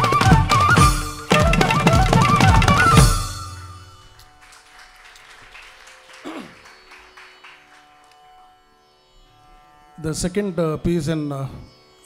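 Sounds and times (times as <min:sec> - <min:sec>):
faint scattered clapping: 0:04.1 - 0:08.3.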